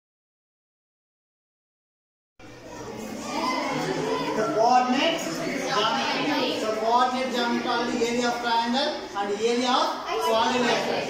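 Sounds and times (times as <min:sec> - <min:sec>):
children chattering: 0:02.4 - 0:11.0.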